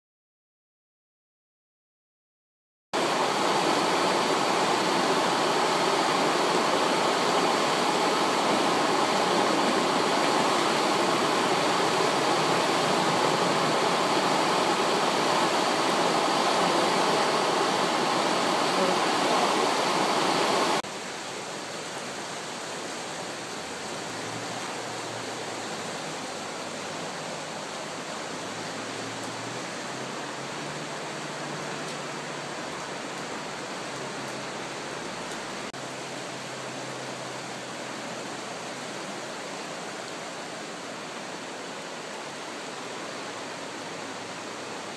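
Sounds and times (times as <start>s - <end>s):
river torrent rushing: 3.0s - 44.9s.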